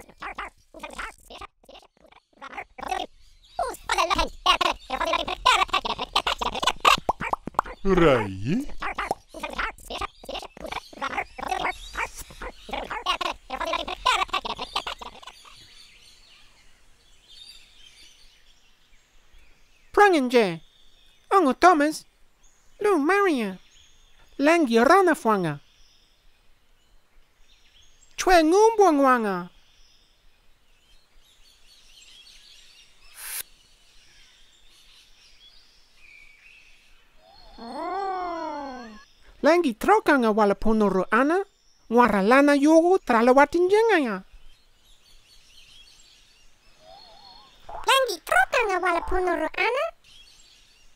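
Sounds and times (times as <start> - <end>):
character voice vocal sounds: 0.0 - 15.4, 37.4 - 39.0, 46.9 - 49.9
birds chirping: 0.0 - 50.9
light high hiss: 29.6 - 39.5
short noisy swish: 33.2 - 33.5
drawn-out voice-like call: 37.2 - 39.0.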